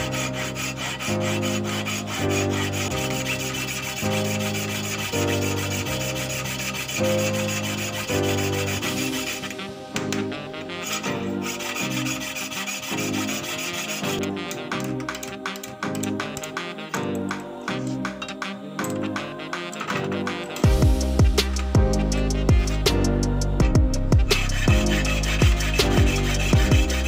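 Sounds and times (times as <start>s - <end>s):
background music: 0.0s - 27.0s
file rasping on metal: 0.0s - 27.0s.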